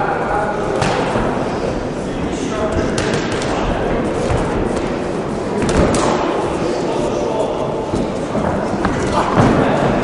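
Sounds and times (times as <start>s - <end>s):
many voices echoing in hall: 0.0s - 10.0s.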